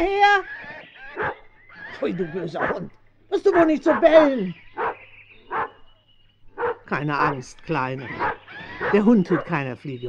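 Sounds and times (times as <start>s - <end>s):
dog barking: 1.1s - 1.4s, 2.6s - 2.9s, 3.5s - 5.8s, 6.6s - 7.4s, 8.0s - 9.6s.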